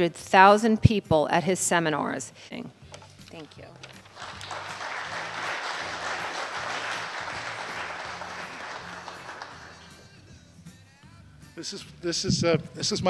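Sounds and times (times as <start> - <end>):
low background music: 0.0 - 13.0
audience applauding: 4.0 - 10.1.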